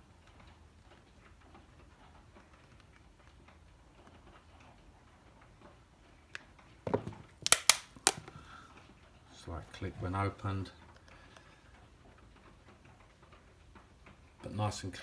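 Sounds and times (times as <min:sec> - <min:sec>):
box lid clicks: 0:07.4 - 0:08.2.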